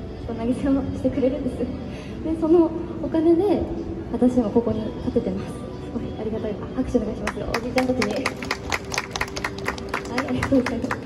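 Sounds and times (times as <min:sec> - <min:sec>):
people clapping: 0:07.3 - 0:11.0.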